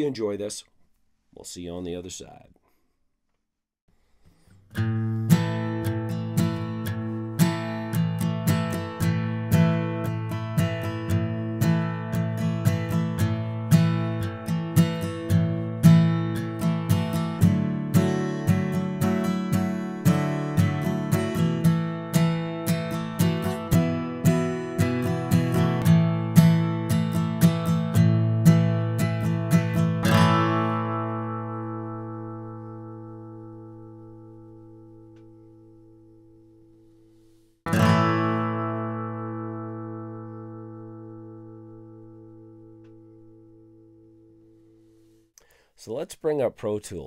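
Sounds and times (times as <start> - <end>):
acoustic guitar strummed: 4.4 - 36.5, 37.7 - 45.1.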